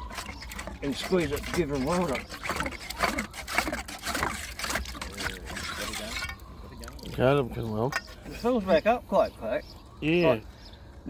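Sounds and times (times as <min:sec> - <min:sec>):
wet splashes and knocks: 0:00.0 - 0:07.2
water sloshing in well casing: 0:00.0 - 0:08.9.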